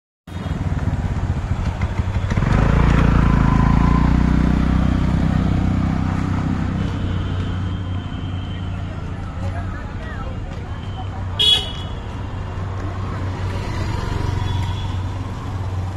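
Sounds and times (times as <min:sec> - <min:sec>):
street noise: 0:00.3 - 0:15.9
motorcycle engine passing: 0:00.5 - 0:06.8.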